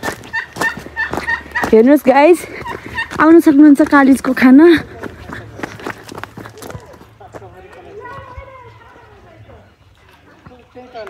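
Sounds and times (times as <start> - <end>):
turkeys wavering calls: 0.0 - 4.2
turkeys clicking calls: 0.0 - 11.0.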